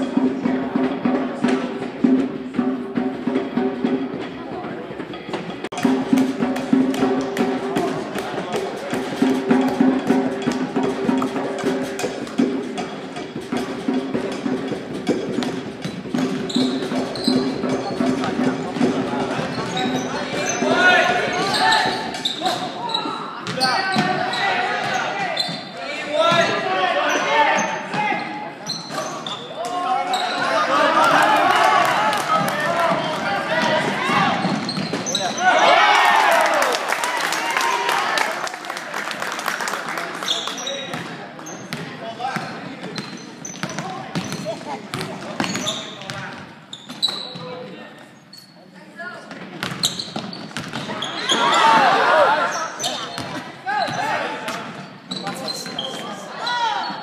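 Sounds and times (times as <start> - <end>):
basketball bouncing on wooden floor: 49.6 - 50.9
voices calling out: 50.8 - 57.0.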